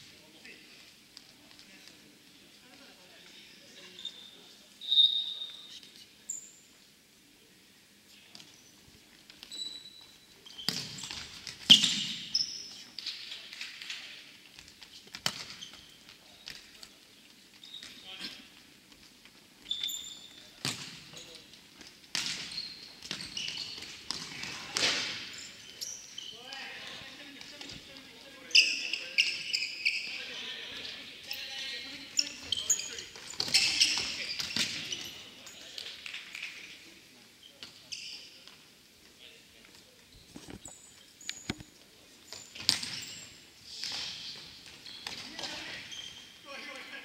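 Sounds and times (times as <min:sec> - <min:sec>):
sneakers squeaking on floor: 0:03.7 - 0:06.7, 0:09.4 - 0:13.2, 0:14.6 - 0:16.9, 0:17.5 - 0:18.5, 0:19.4 - 0:36.7, 0:37.4 - 0:38.7, 0:40.1 - 0:46.5.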